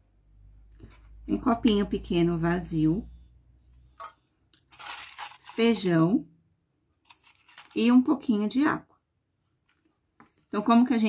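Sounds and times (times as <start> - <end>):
beans rustling in cup: 4.6 - 5.8, 7.1 - 7.9.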